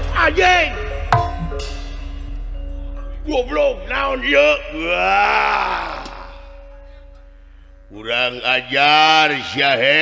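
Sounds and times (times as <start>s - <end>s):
held tone: 1.2s - 2.0s
man's drawn-out vocal cry: 5.0s - 6.6s.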